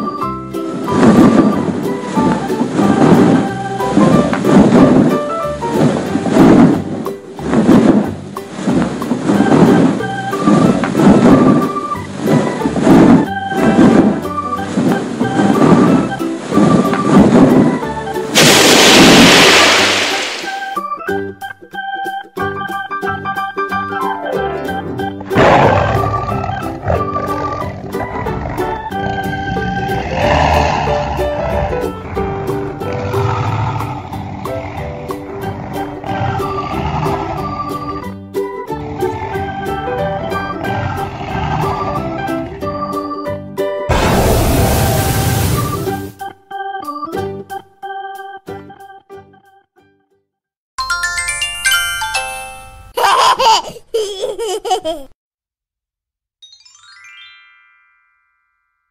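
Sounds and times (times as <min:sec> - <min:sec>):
electronic organ music: 0:20.5 - 0:25.2, 0:42.1 - 0:43.9, 0:45.6 - 0:49.6
dragon roars: 0:25.4 - 0:37.9, 0:40.5 - 0:42.2, 0:43.9 - 0:45.6
bell-like chime jingle: 0:50.8 - 0:53.0, 0:56.4 - 0:58.9.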